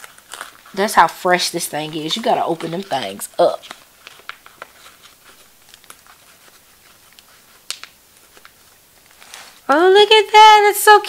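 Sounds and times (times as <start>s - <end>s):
paper stickers rustling: 0.0s - 9.6s.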